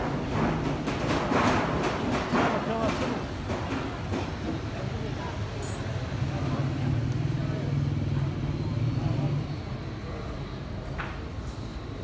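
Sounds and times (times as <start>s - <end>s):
people talking: 2.4s - 3.2s, 4.8s - 10.6s.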